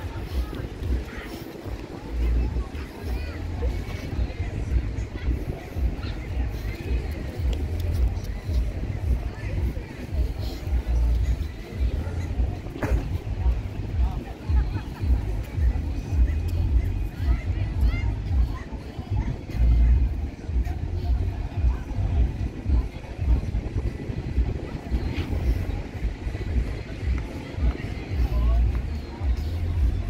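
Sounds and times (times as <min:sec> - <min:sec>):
faint voices of passers-by: 0:00.0 - 0:30.0
wind buffeting microphone: 0:00.0 - 0:30.0.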